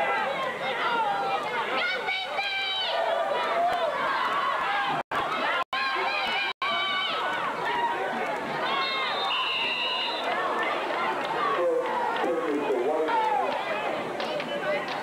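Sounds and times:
crowd yelling and cheering: 0.0 - 15.0.

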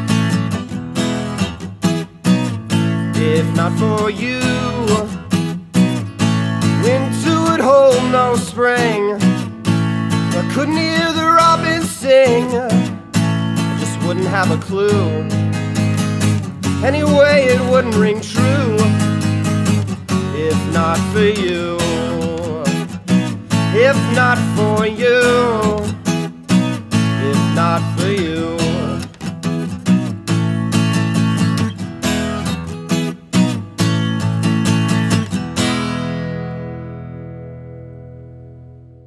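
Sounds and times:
acoustic guitar strumming: 0.0 - 39.0
man singing: 2.9 - 5.4, 6.6 - 9.5, 10.1 - 15.8, 16.6 - 29.2.

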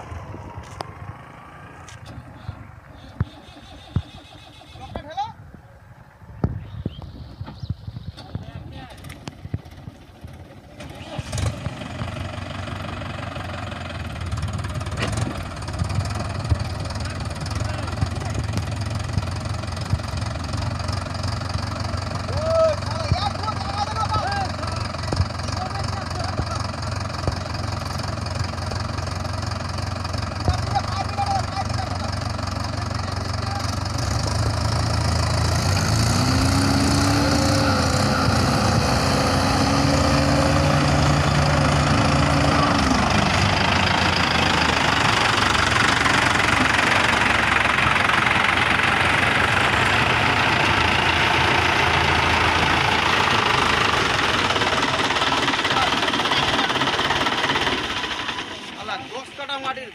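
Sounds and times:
tractor diesel engines running: 0.0 - 59.9.

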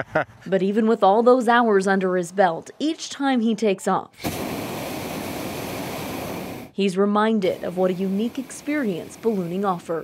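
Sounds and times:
propane burner firing: 4.2 - 6.8, 7.4 - 10.0.

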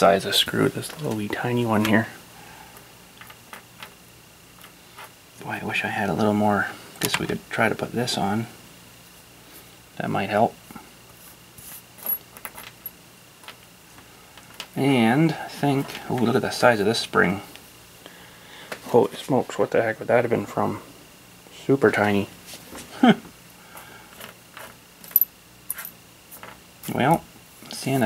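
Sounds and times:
metal screws and washers clinking: 24.6 - 26.0.

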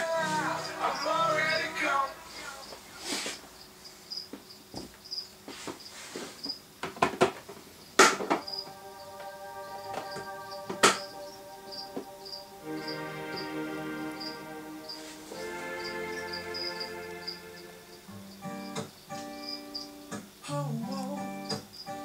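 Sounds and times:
high chirp: 0.0 - 3.7, 8.4 - 20.1
sustained chords: 0.0 - 3.7, 8.3 - 18.8.

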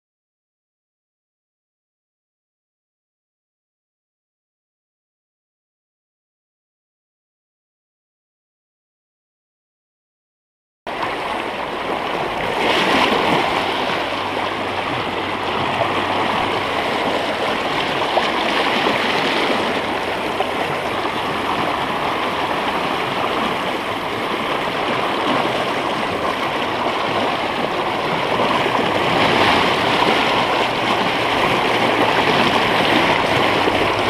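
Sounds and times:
river rushing over stones: 10.9 - 34.0.

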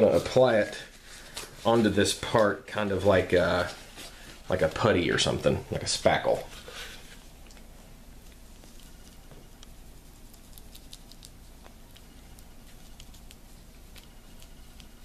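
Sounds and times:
low room hum: 0.0 - 15.0
small sticky clicks: 7.4 - 15.0.

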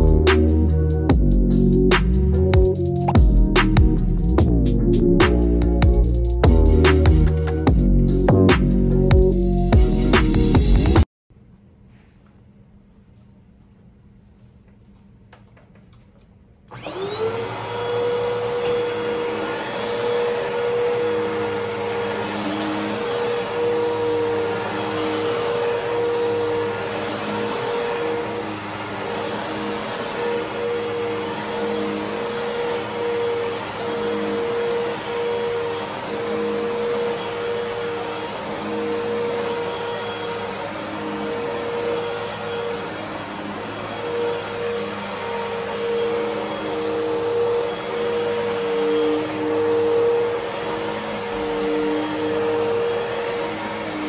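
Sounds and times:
vacuum cleaner whining: 16.7 - 54.0.

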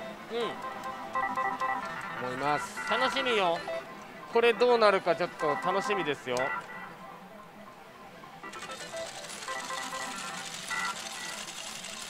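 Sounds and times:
short beeping tones: 0.0 - 7.6
slot machine noise: 0.0 - 12.0.

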